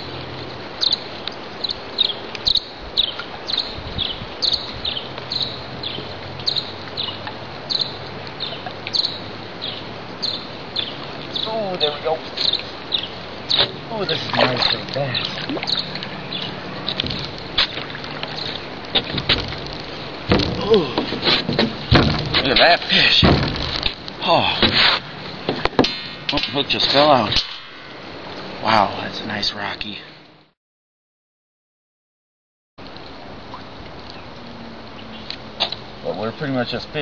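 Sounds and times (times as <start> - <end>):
steady outdoor hiss: 0.0 - 30.5, 32.8 - 37.0.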